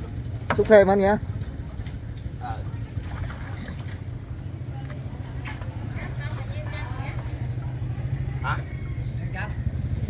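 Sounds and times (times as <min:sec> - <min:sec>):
faint voices talking: 0:00.0 - 0:10.0
small engine idling: 0:04.4 - 0:10.0.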